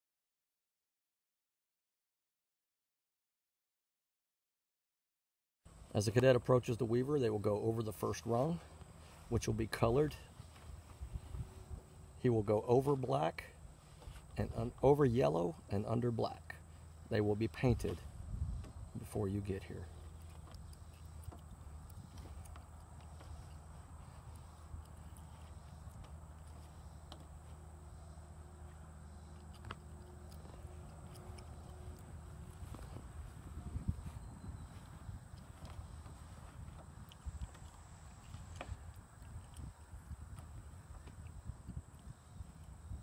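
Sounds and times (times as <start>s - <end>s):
low steady hum: 5.7s - 43.0s
wind rumble on microphone: 8.6s - 12.5s, 13.6s - 15.1s, 17.1s - 27.2s, 27.9s - 43.0s.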